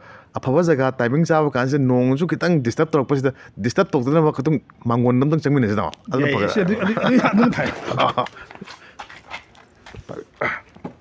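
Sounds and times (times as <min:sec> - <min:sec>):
man laughing: 0:06.2 - 0:08.8
footsteps: 0:07.2 - 0:11.0.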